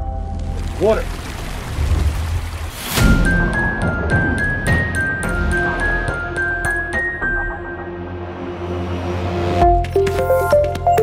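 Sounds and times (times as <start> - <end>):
rushing spraying water: 0.3 - 3.3.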